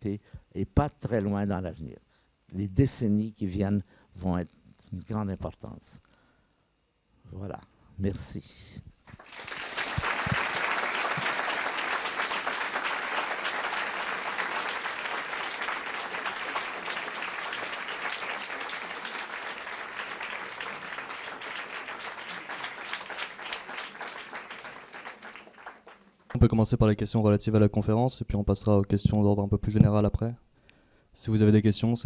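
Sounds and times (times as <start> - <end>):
audience applauding: 9.1 - 26.4.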